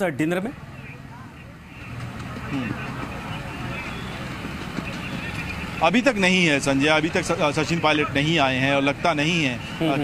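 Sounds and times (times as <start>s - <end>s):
traffic rumble: 0.0s - 10.0s
distant voices: 0.4s - 10.0s.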